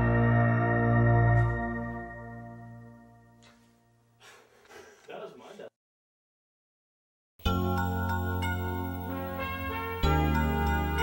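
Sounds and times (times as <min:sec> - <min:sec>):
song fading out: 0:00.0 - 0:03.4.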